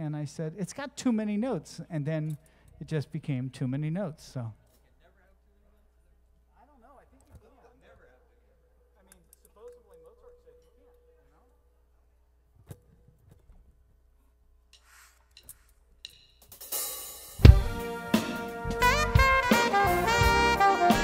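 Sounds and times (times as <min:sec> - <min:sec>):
drum and bass hit: 0:17.4 - 0:21.0
jazz band playing: 0:17.4 - 0:21.0.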